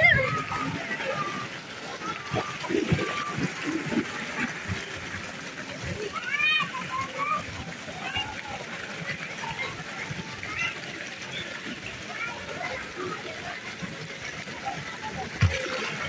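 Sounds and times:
children's voices: 0:00.0 - 0:16.0
water splashing and sloshing: 0:00.0 - 0:16.0.

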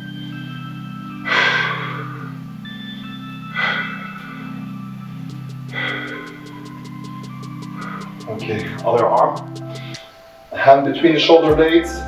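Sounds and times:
background music with low chords: 0:00.0 - 0:12.0
person breathing loudly: 0:01.2 - 0:02.5, 0:03.5 - 0:04.8, 0:05.6 - 0:08.8, 0:09.7 - 0:10.4.

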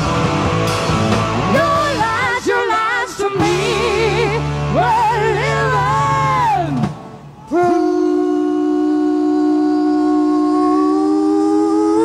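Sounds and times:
live rock band: 0:00.0 - 0:12.0
woman singing long note: 0:07.5 - 0:12.0.

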